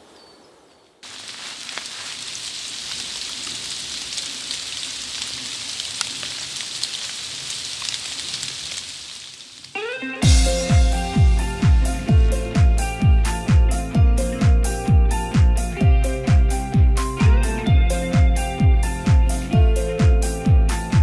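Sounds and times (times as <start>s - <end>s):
light rain on leaves: 0.0s - 9.8s.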